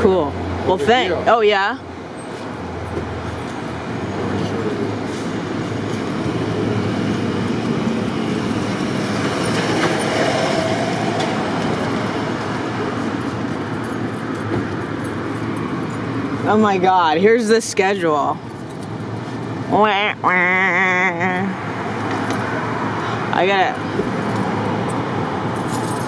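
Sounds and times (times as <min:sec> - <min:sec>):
street traffic noise: 0:00.0 - 0:26.0
heavy vehicle rumbling past: 0:02.2 - 0:16.5.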